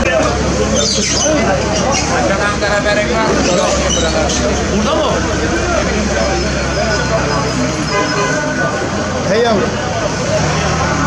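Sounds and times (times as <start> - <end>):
people talking in crowd: 0.0 - 11.0
vehicle traffic hum: 0.0 - 11.0.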